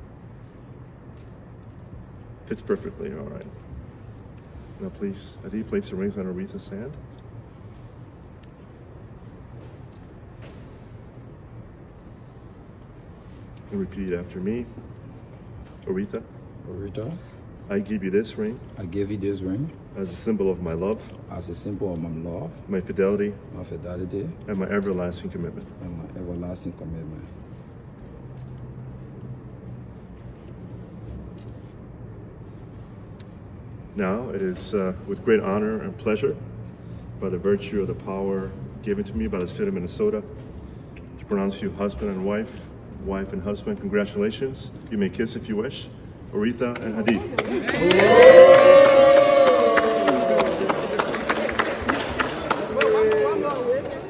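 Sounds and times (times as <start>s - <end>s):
low background hum: 0.0s - 54.0s
people clapping: 46.7s - 54.0s
people calling out and cheering: 47.3s - 51.1s.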